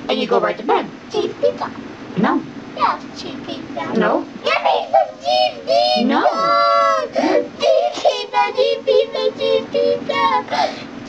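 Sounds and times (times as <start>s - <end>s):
pitch-shifted child's voice singing: 4.5s - 10.6s.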